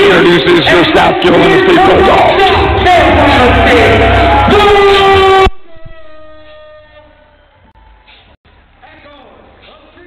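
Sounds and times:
loud music with heavy bass: 0:00.0 - 0:06.5.

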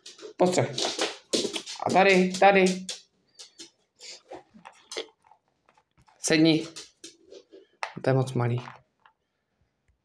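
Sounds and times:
dog chewing crunches: 0:03.4 - 0:07.4.

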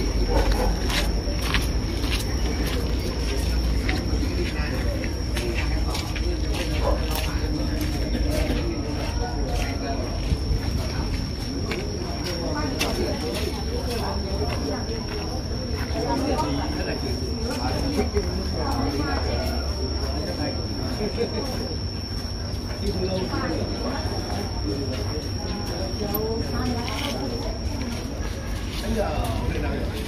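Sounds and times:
indistinct chatter: 0:00.0 - 0:30.0
steady high-pitched tone: 0:00.0 - 0:30.0.

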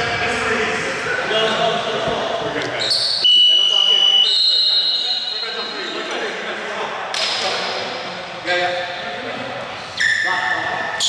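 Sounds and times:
players' voices in echoing gym: 0:00.0 - 0:11.0.

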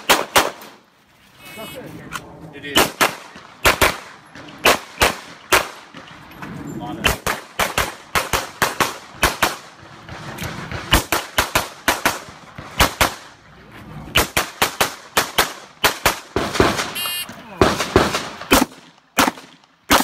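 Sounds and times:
pistol firing rapid shots: 0:00.0 - 0:00.6, 0:02.8 - 0:05.8, 0:07.1 - 0:13.2, 0:14.2 - 0:17.0, 0:17.6 - 0:20.0
short electronic beep: 0:17.0 - 0:17.3.

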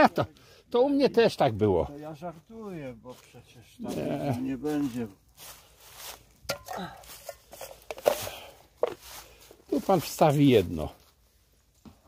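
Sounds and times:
footsteps in dry leaves: 0:03.1 - 0:11.8.

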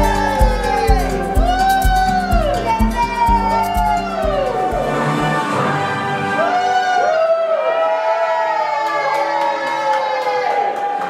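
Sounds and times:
music with gliding held notes: 0:00.0 - 0:06.5.

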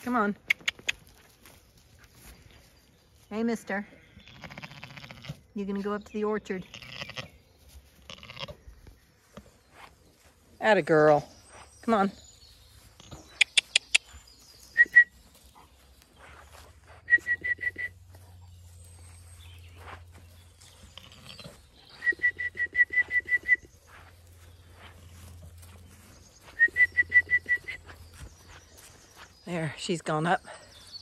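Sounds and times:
tongue clicks: 0:00.4 - 0:01.0, 0:13.4 - 0:14.1.

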